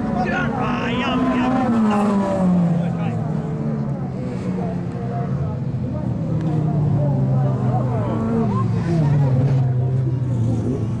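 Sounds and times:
car engines droning: 0.0s - 11.0s.

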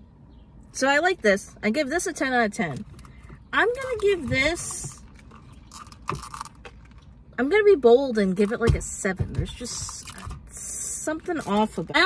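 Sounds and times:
plastic cup rustle and clatter: 2.6s - 7.2s, 9.5s - 12.0s.

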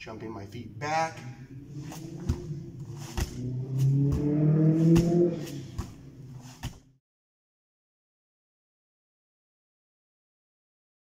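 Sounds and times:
low drone rising in pitch: 0.0s - 6.4s
feet thumping on foam mats: 1.8s - 6.9s.

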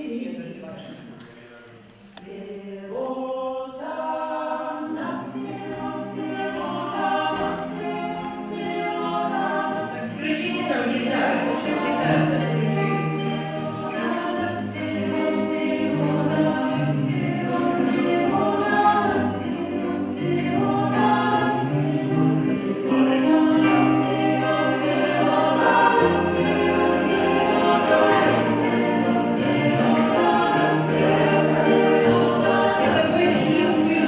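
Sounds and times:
mixed choir singing in harmony: 2.0s - 34.0s
guitars: 5.0s - 34.0s.

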